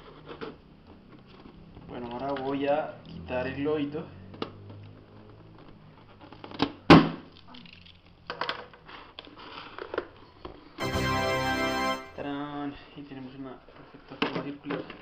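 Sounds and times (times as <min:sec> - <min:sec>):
steady musical tone: 0:10.8 - 0:12.4.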